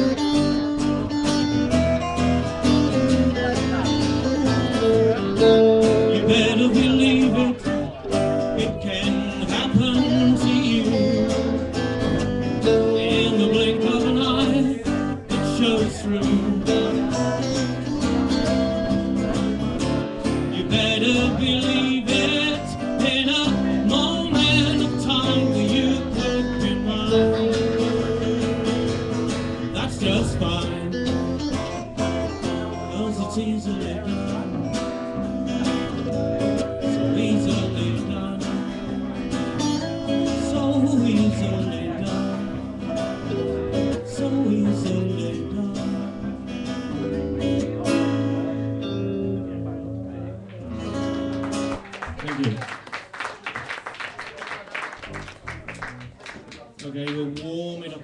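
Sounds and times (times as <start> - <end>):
live band playing: 0.0 - 52.3
strummed acoustic guitar: 0.0 - 52.5.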